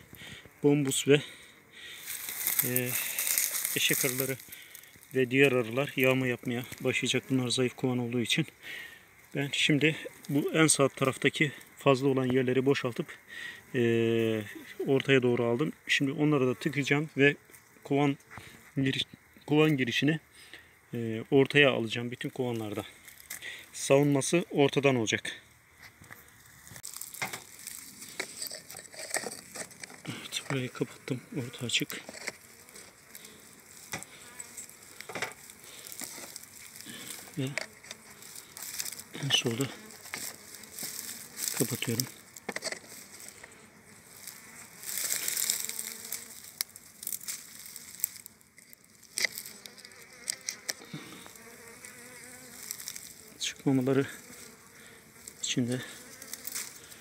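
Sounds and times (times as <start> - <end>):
honeybees buzzing: 0.0 - 21.0, 25.5 - 57.0.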